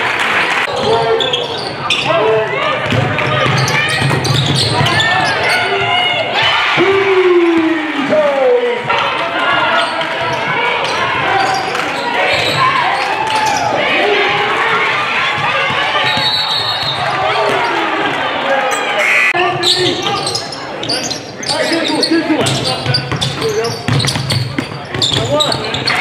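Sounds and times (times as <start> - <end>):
voices and shouts echoing: 0.0 - 26.0.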